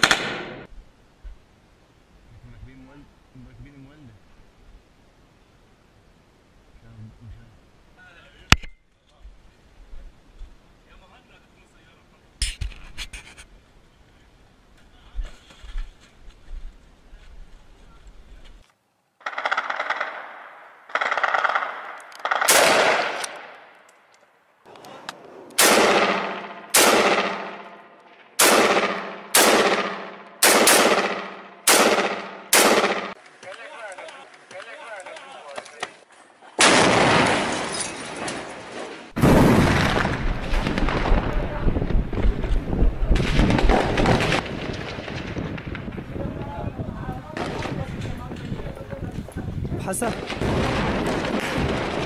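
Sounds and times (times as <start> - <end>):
rifle shots: 0.0 - 0.7, 19.2 - 23.7, 25.6 - 34.6, 36.6 - 38.0, 43.2 - 45.8, 50.1 - 52.0.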